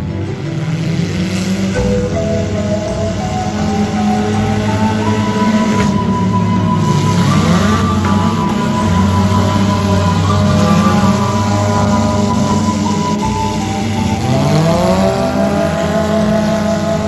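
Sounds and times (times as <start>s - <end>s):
music: 0.0s - 17.0s
race car engines revving: 0.0s - 17.0s.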